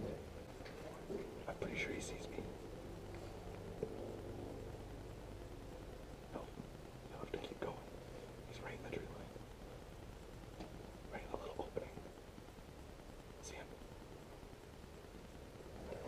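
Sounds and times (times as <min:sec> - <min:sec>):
low steady hum: 0:00.0 - 0:16.0
soft rustles and clicks: 0:00.0 - 0:16.0.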